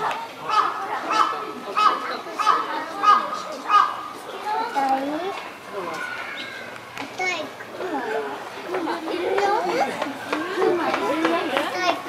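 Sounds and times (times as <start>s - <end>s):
people and children talking: 0.0s - 12.0s.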